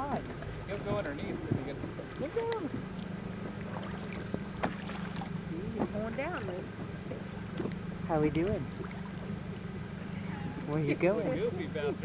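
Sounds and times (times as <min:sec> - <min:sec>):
boat engine idling: 0:00.0 - 0:12.0.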